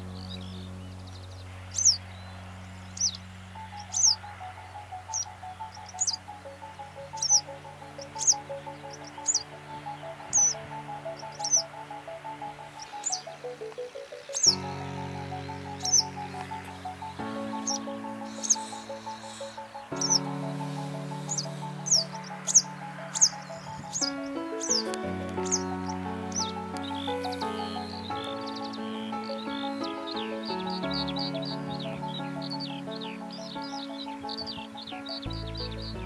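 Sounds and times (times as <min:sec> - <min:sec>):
music of slow held chords: 0:00.0 - 0:36.0.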